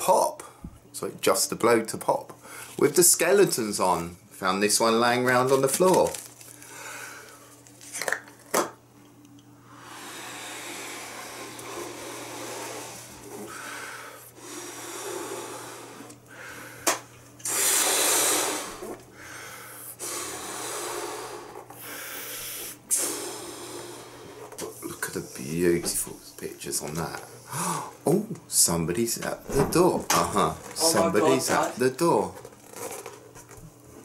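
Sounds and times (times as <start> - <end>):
breaths blowing up balloon: 9.7 - 24.9.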